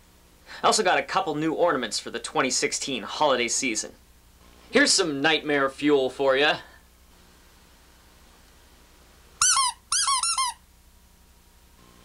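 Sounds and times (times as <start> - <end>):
rubber toy squeaking: 9.4 - 10.6.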